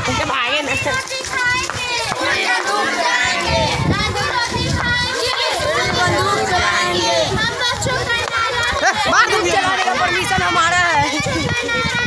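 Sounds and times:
children chanting: 0.9s - 12.0s.

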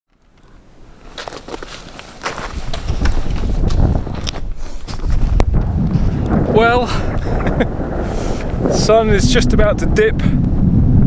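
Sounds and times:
wind buffeting microphone: 2.2s - 11.0s.

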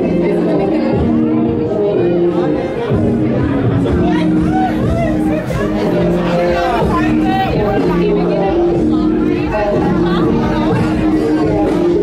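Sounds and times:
crowd chattering: 0.0s - 12.0s
loud electronic music: 0.0s - 12.0s.

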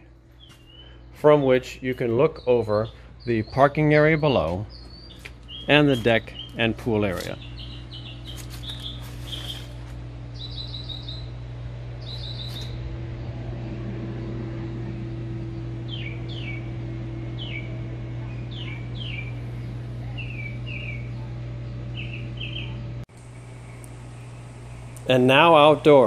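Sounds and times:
low mechanical hum: 0.0s - 26.0s
songbirds chirping and whistling: 0.2s - 26.0s.

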